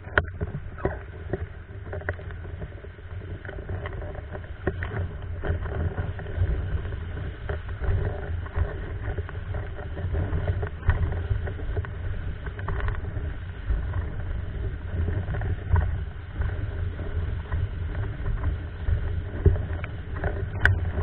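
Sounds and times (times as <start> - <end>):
board rushing across water: 0.0 - 21.0.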